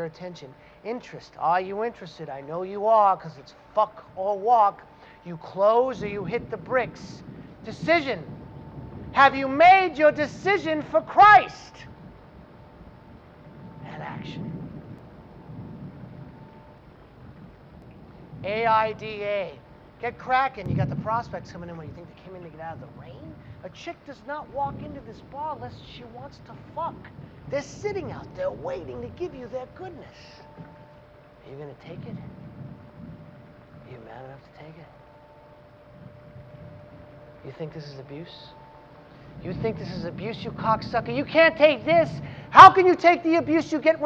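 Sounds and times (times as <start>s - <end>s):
faint high hum: 0.0s - 44.0s
low background rumble: 0.0s - 44.0s.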